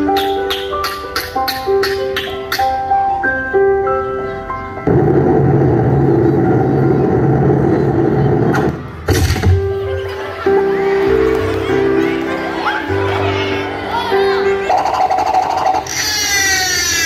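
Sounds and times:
loud rushing noise: 0:04.8 - 0:09.8.

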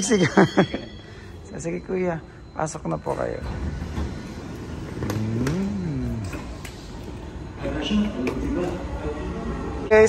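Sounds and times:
sliding doors motor whining: 0:03.0 - 0:07.8.

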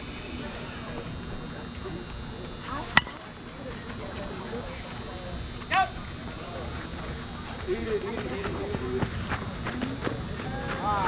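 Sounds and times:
bat cracking ball: 0:02.9 - 0:03.3.

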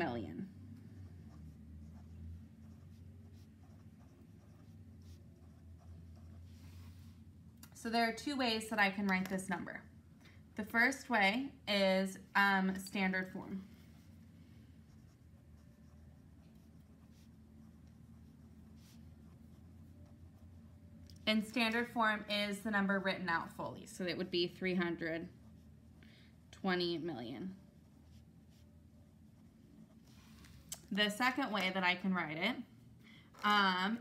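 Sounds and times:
pen scratching on paper: 0:00.8 - 0:06.6, 0:14.8 - 0:20.8, 0:24.6 - 0:26.0.

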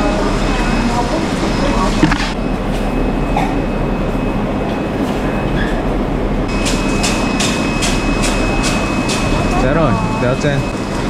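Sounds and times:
tank pumps rumbling: 0:00.3 - 0:11.0
water bubbling: 0:01.8 - 0:02.5.

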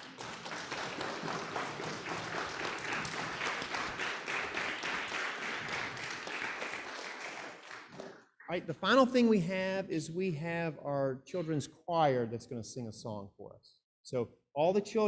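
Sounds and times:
audience applauding: 0:00.0 - 0:08.2.

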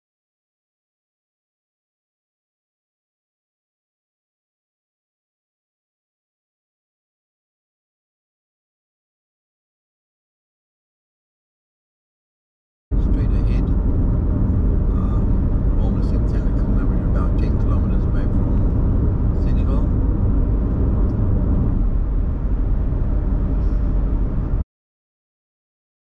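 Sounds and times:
car road and wind rumble: 0:12.9 - 0:24.6.

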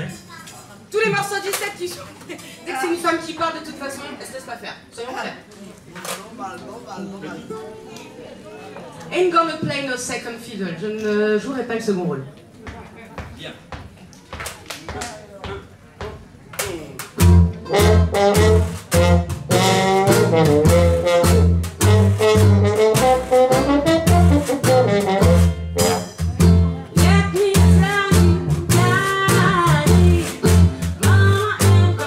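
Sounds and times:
walking double bass: 0:17.0 - 0:32.0
banjo: 0:17.2 - 0:32.0
slide trombone melody: 0:17.2 - 0:32.0
washboard keeping the beat: 0:17.2 - 0:32.0.

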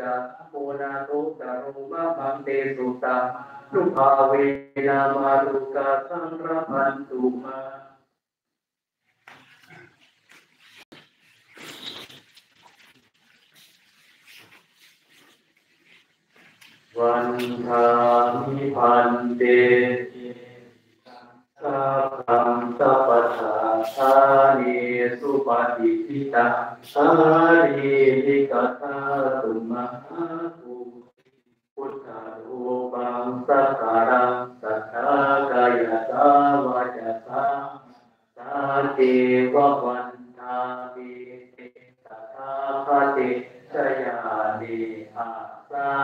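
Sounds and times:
monks chanting: 0:00.0 - 0:07.8, 0:16.9 - 0:31.0, 0:31.8 - 0:46.0
faint rustling of robes: 0:09.1 - 0:18.3.

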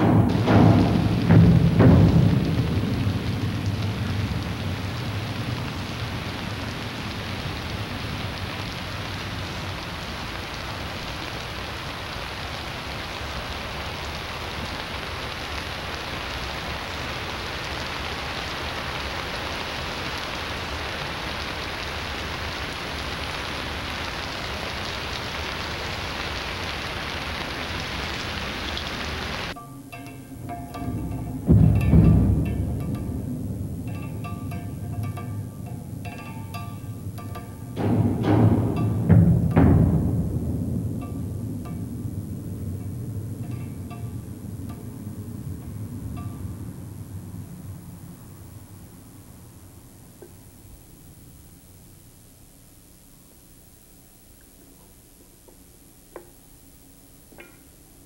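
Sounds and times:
steady rushing hiss: 0:00.0 - 0:58.0.

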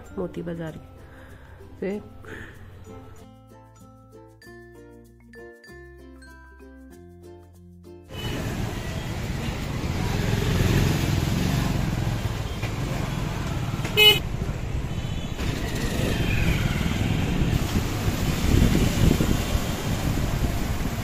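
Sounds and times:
traffic rumble and road noise: 0:08.1 - 0:21.0
vehicle horn toot: 0:13.9 - 0:14.2.

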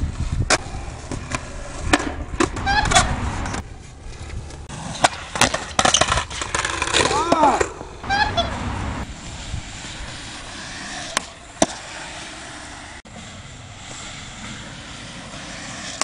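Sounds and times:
skateboard wheels rolling: 0:00.0 - 0:16.0
person crying out: 0:07.0 - 0:08.6
skateboard clacks: 0:10.5 - 0:12.5.

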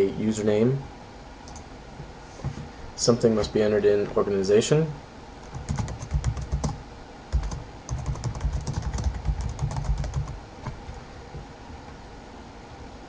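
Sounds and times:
computer keyboard typing: 0:05.4 - 0:10.9.

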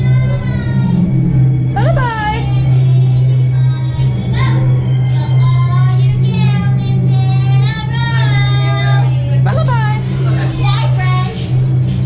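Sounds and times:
loud low hum: 0:00.0 - 0:12.0.

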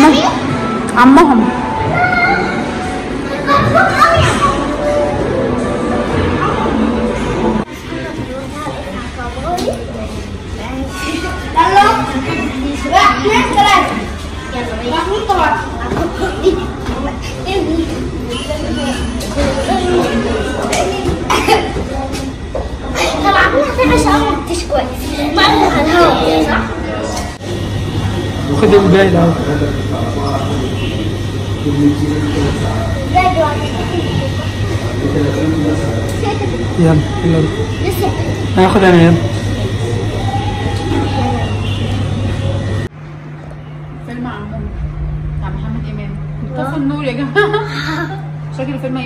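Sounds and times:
faint voices: 0:00.0 - 0:42.9
busy lobby hum: 0:00.0 - 0:49.0.

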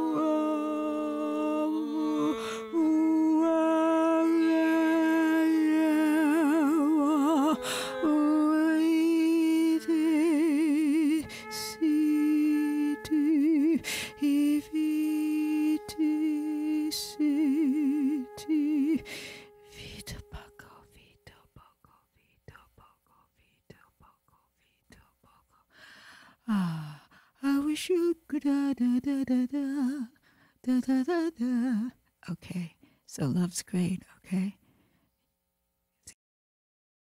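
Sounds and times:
woman humming: 0:00.0 - 0:21.2.

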